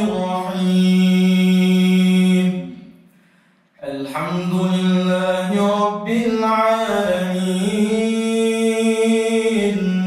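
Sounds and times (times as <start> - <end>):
man chanting melodically: 0.0 - 2.9, 3.8 - 10.0.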